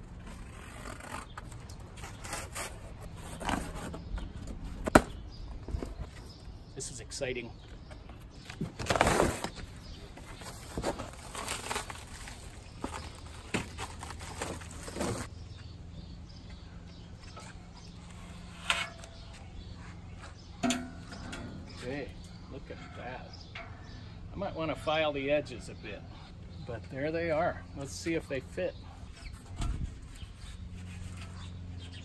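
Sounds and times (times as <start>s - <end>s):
cardboard and plastic tearing: 0.2s - 4.0s, 8.6s - 15.3s.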